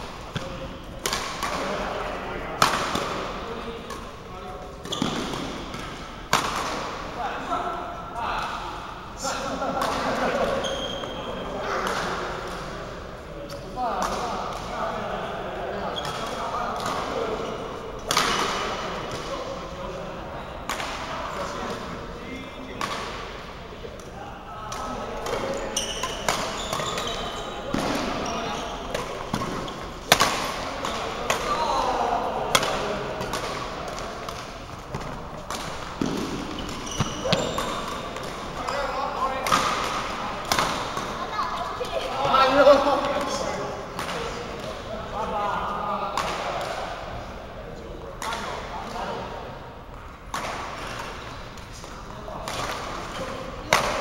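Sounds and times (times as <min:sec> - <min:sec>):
rackets striking shuttlecock: 0:00.2 - 0:01.9, 0:04.8 - 0:07.0, 0:24.7 - 0:28.2, 0:28.9 - 0:31.6, 0:39.4 - 0:41.2.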